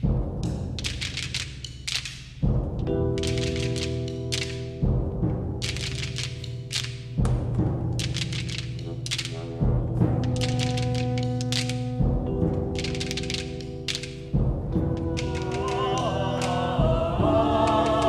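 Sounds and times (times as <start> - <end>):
low orchestral drone: 14.7 - 18.0.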